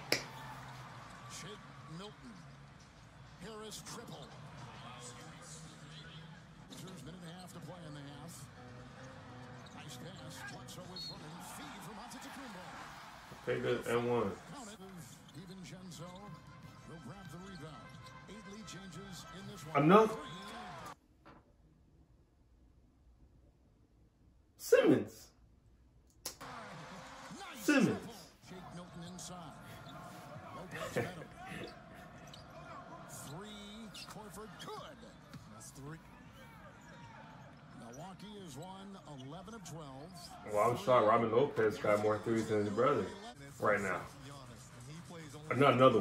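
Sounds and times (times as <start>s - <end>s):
commentator talking: 13.4s - 15.4s, 17.2s - 20.5s, 27.4s - 34.9s, 39.5s - 46.0s.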